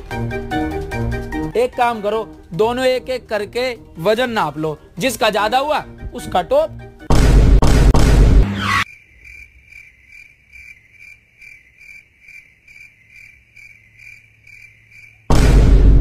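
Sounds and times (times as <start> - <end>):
cricket chirping: 8.8 - 15.3.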